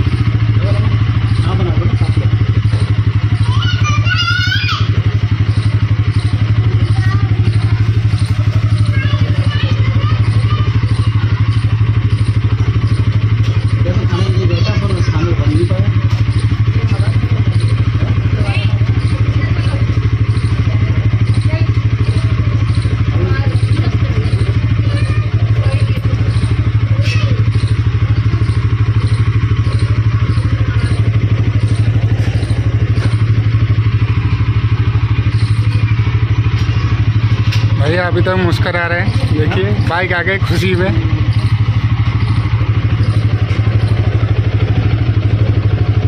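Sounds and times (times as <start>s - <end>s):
motorcycle engine idling: 0.0s - 46.0s.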